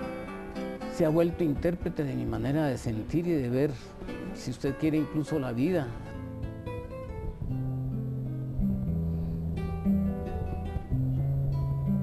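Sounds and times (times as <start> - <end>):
fingerpicked classical guitar: 0.0 - 12.0.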